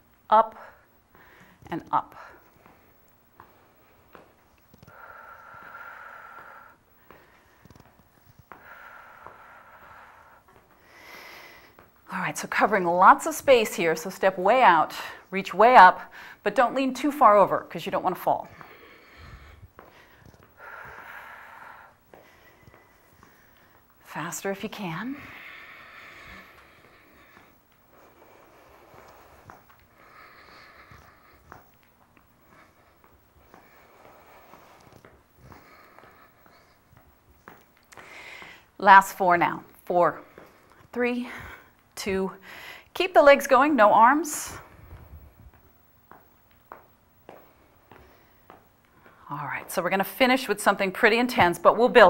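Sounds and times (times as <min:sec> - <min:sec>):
woman breathing: 0:00.0 - 0:15.3, 0:15.9 - 0:16.5, 0:17.4 - 0:51.0
soft taps of feet on floor: 0:45.5 - 0:49.8.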